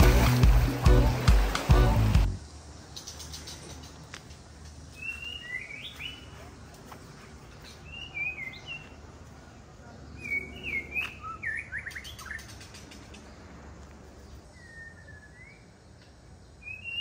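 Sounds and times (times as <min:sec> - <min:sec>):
songbird singing: 0:00.0 - 0:17.0.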